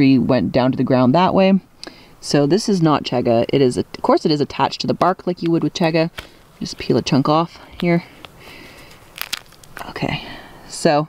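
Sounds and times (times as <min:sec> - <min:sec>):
fungus crackling and snapping off bark: 0:05.4 - 0:10.0.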